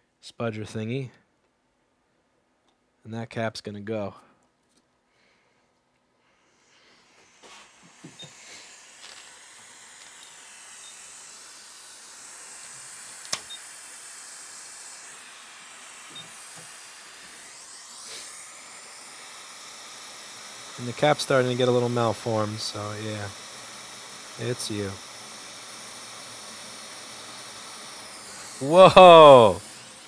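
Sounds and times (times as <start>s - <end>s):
hot air blower hiss: 6.2s - 30.0s.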